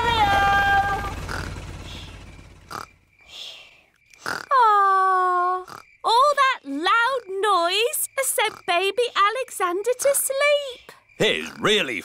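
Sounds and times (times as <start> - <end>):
cartoon helicopter rumble: 0.0 - 3.1.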